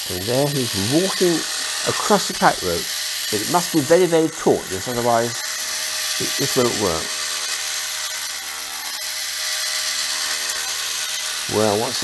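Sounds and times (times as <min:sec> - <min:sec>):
high-pitched motor whir: 0:00.0 - 0:12.0.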